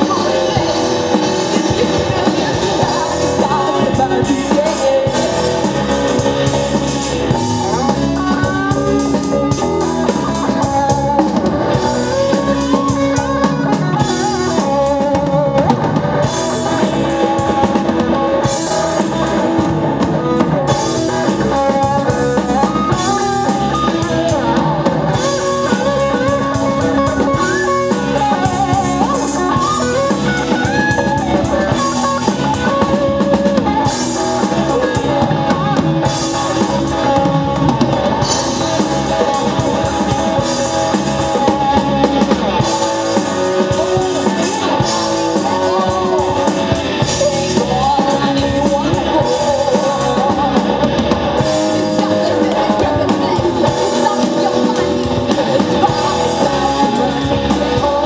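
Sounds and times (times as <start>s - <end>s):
electric guitar: 0.0s - 58.0s
rock band playing: 0.0s - 58.0s.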